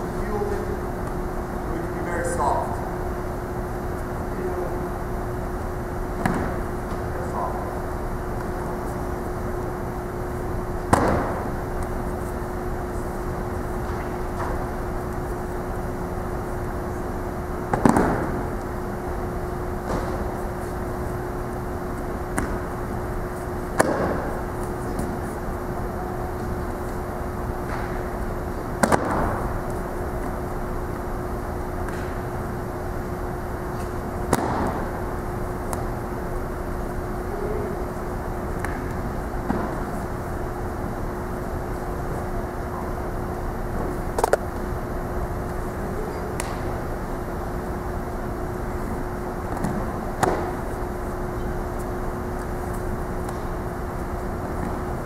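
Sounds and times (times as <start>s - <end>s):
steady background hum: 0.0s - 55.0s.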